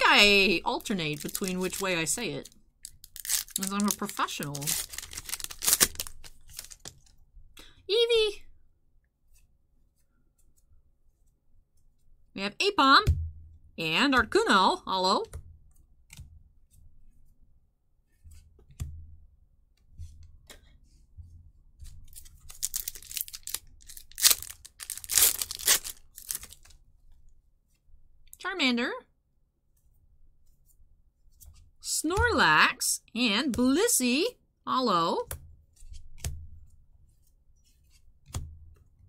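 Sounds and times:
cards rustling against each other: 0:00.3 - 0:07.2, 0:21.8 - 0:26.8
foil wrapper tearing and crinkling: 0:00.6 - 0:07.0, 0:22.1 - 0:26.7.

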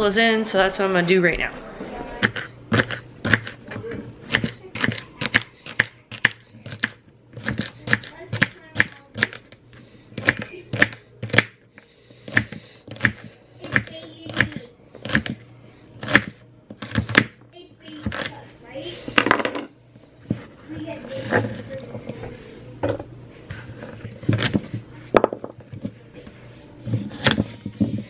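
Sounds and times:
knife chopping on wooden board: 0:02.2 - 0:03.6, 0:04.2 - 0:09.4, 0:10.2 - 0:11.6, 0:12.2 - 0:15.4, 0:16.0 - 0:17.4, 0:26.9 - 0:28.0.

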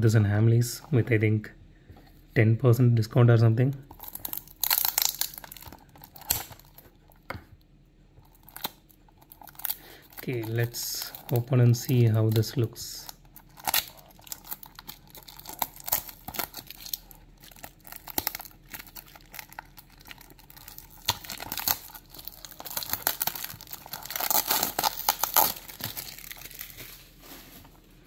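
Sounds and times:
peeling cardboard box seal: 0:13.0 - 0:26.7.

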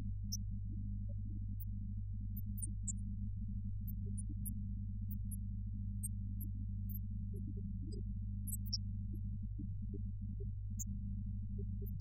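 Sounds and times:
vinyl record hum and rumble: 0:00.0 - 0:12.0
faint vinyl ticks: 0:00.2 - 0:12.0.

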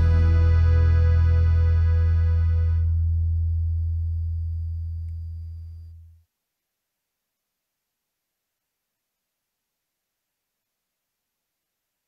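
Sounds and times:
acoustic guitar chord ringing: 0:00.0 - 0:03.3
deep bass note: 0:00.0 - 0:06.0.

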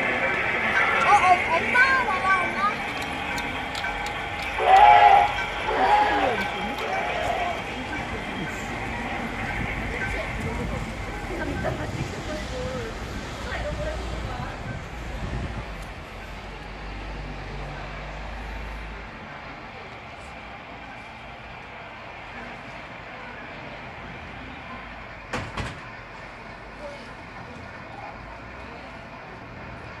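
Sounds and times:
faint voices: 0:00.0 - 0:30.0
street ambience: 0:00.0 - 0:30.0.

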